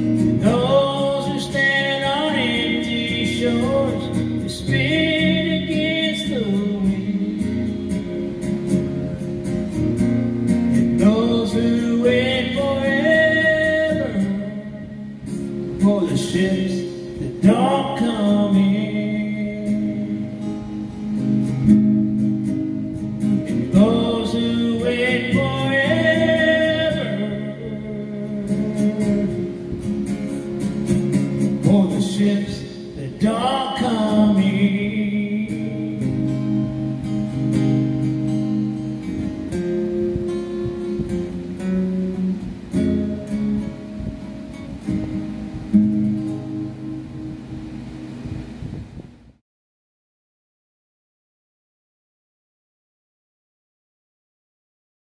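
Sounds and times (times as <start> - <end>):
acoustic guitar strumming: 0.0 - 49.4
man singing long notes: 0.4 - 7.9, 11.0 - 20.6, 23.6 - 29.8, 31.6 - 36.6.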